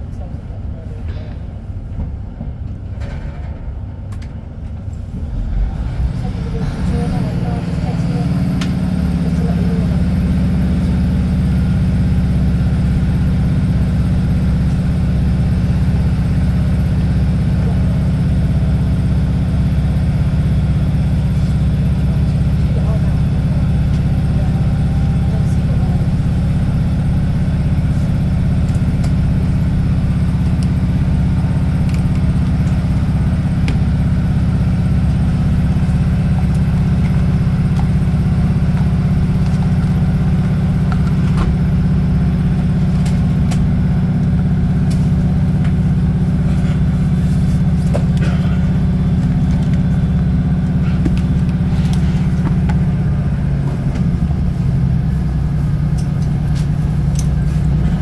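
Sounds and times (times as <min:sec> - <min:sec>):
train diesel engine drone: 0:00.0 - 0:58.0.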